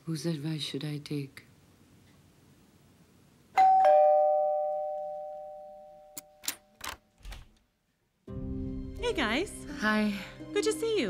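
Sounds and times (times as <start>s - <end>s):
two-note doorbell chime: 3.6s - 6.4s.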